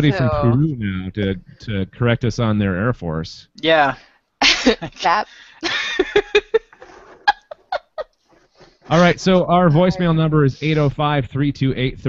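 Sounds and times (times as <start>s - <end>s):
woman laughing: 0.0s - 0.6s, 4.4s - 8.2s
faint breaths: 5.2s - 5.6s.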